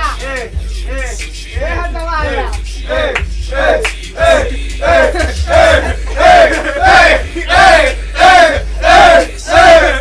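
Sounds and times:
hip-hop track: 0.0 - 10.0
steady bass line: 0.0 - 10.0.

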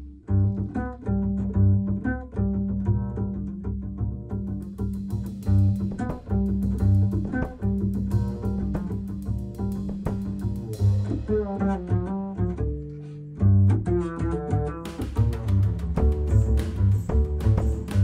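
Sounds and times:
double bass plucked pizzicato: 0.0 - 18.0
light drum kit: 4.5 - 12.2, 14.8 - 18.0.

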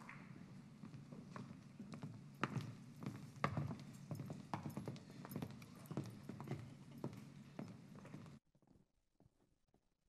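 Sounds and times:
footsteps on hard stage floor: 0.4 - 9.3.

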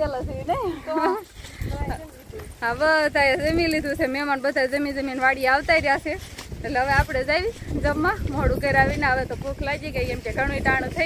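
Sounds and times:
women's voices: 0.0 - 11.0.

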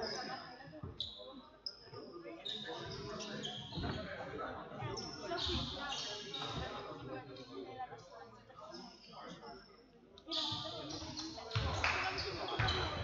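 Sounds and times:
sneaker squeaks: 0.0 - 4.2, 4.8 - 6.9, 10.3 - 13.0.

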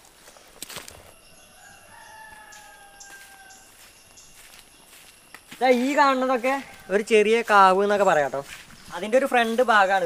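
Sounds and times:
faint rooster crowing: 1.2 - 4.6, 6.2 - 7.8
footsteps on stone: 1.9 - 10.0.

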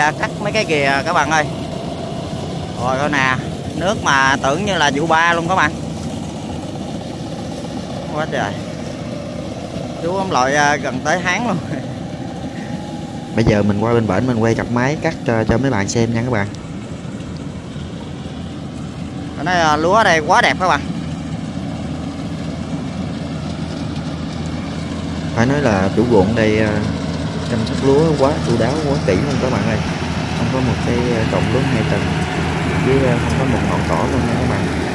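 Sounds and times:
combine harvester engines droning: 0.0 - 34.9.

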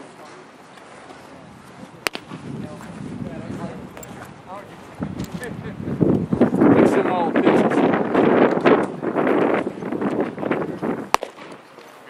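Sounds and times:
baseball smacking into glove: 2.0 - 2.4, 11.1 - 11.6.

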